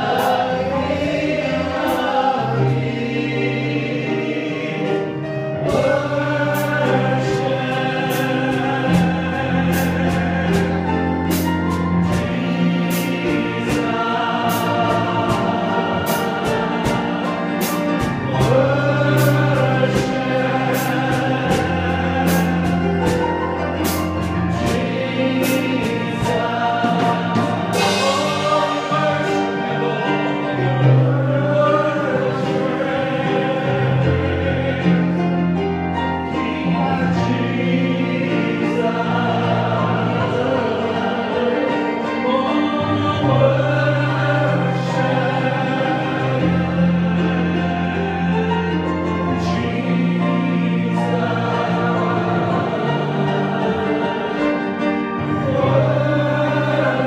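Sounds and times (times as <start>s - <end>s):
digital piano accompaniment: 0.0s - 57.0s
men singing gospel song: 0.0s - 57.0s
percussion hits: 5.7s - 30.0s.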